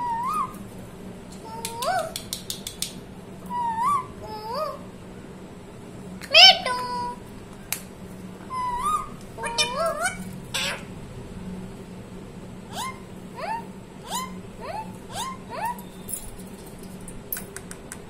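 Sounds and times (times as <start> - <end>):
parakeet calling: 0.0 - 0.6, 3.5 - 4.9, 6.3 - 7.2, 8.4 - 10.9, 12.7 - 16.0.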